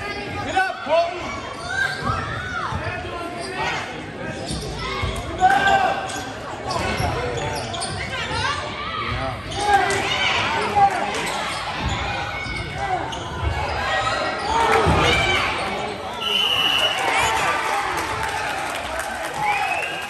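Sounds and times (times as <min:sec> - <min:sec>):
spectators' voices: 0:00.0 - 0:20.0
sneakers squeaking: 0:01.5 - 0:10.0, 0:11.1 - 0:17.4
high whistle blast: 0:16.2 - 0:17.0.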